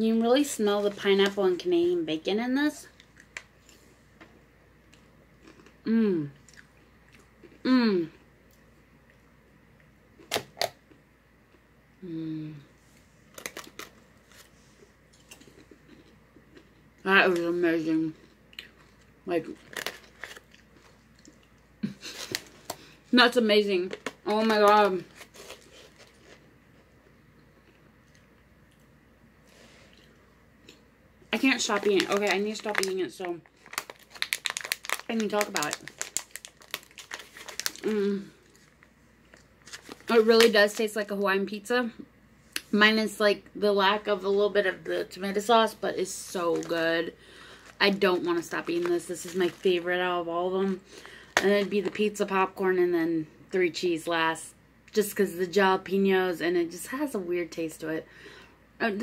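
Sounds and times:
popcorn crunching: 4.9 - 7.8, 13.3 - 14.5, 15.1 - 17.4, 18.5 - 23.0, 23.7 - 26.9, 30.0 - 41.0, 46.1 - 52.1
plastic bag crinkling: 13.3 - 14.5, 18.8 - 21.4, 22.0 - 23.0, 23.8 - 26.4, 31.3 - 41.1, 46.0 - 52.2.

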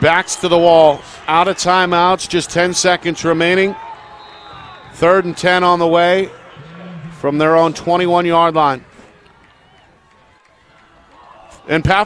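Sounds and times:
distant shouted voices: 0.0 - 11.8
faint stadium crowd: 0.0 - 12.0.

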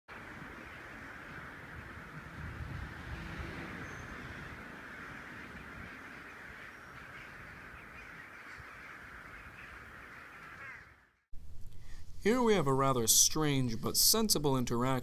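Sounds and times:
crows cawing: 0.1 - 11.2.

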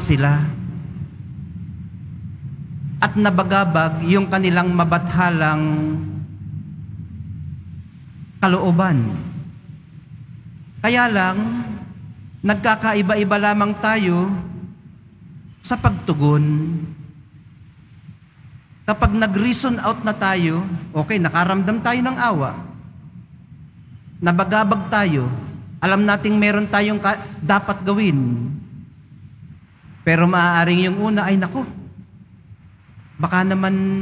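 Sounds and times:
man speaking: 0.0 - 0.9, 3.0 - 6.3, 8.4 - 9.4, 10.8 - 14.8, 15.6 - 17.1, 18.9 - 22.8, 24.2 - 28.8, 30.0 - 32.0, 33.1 - 34.0
low room rumble: 0.0 - 34.0.

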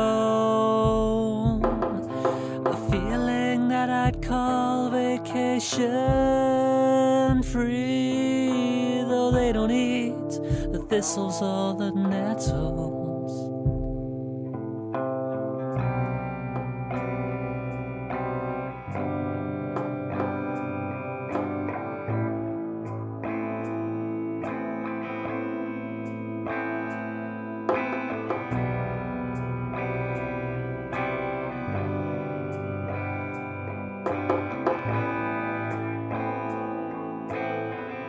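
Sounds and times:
plucked guitar music: 0.0 - 38.0.

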